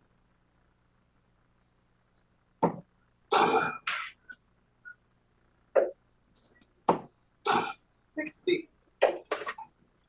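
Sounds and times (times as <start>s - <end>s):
person clearing throat: 3.3s - 4.2s, 5.8s - 6.0s, 7.4s - 7.8s.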